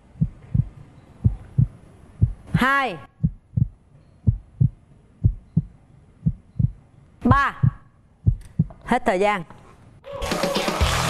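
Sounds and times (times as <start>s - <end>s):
heartbeat thumps: 0.0s - 8.8s.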